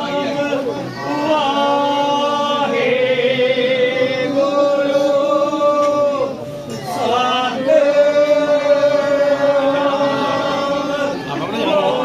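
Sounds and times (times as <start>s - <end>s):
voices chanting: 0.0s - 12.0s.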